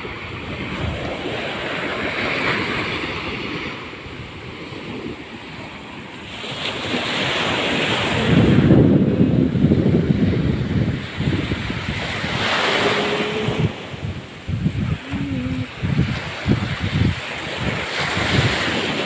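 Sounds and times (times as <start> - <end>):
small waves washing on sand: 0.0 - 19.0
wind buffeting microphone: 0.0 - 19.0.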